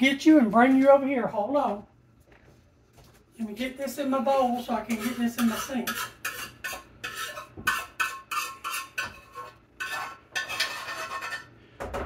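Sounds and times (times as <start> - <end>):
spoon scraping a skillet: 4.5 - 11.6.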